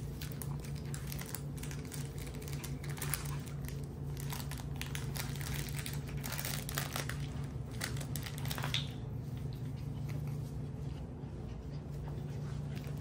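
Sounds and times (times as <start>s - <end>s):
crinkly material rustling: 0.0s - 11.0s
puppies chewing fabric toy: 0.0s - 13.0s
steady low hum: 0.0s - 13.0s.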